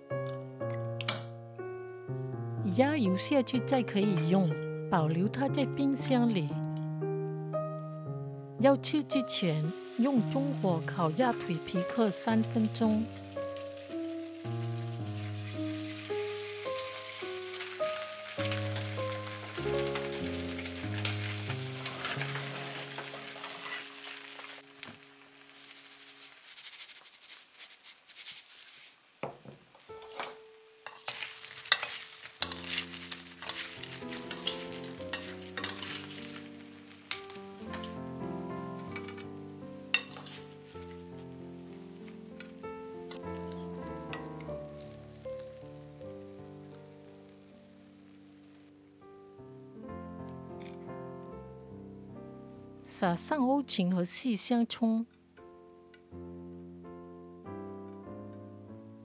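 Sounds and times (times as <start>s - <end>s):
background music: 0.0s - 25.5s, 29.9s - 59.0s
meat sizzling in a frying pan: 8.9s - 49.2s.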